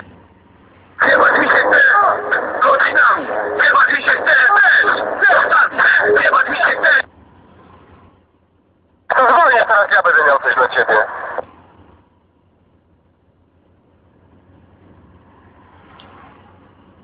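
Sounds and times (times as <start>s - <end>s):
voice over radio: 1.0s - 7.1s, 9.1s - 11.4s.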